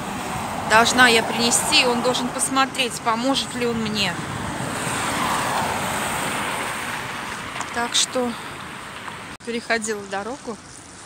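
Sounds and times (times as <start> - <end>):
car passing by: 0.0 - 9.4.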